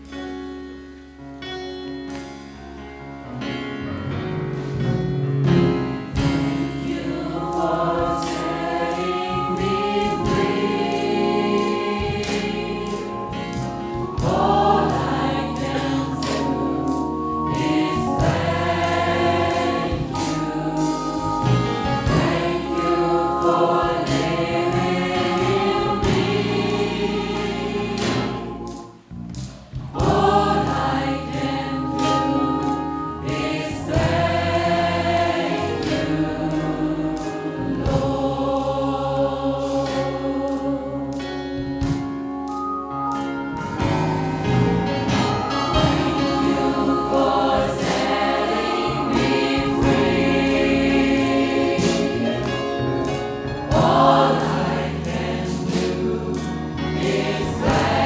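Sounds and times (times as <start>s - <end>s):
live band playing: 4.5s - 38.2s, 41.2s - 54.2s
gospel choir singing: 5.7s - 29.1s, 29.8s - 58.0s.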